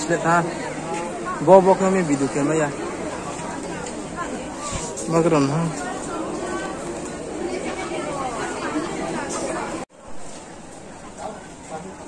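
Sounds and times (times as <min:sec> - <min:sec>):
people talking at once: 0:00.0 - 0:09.8.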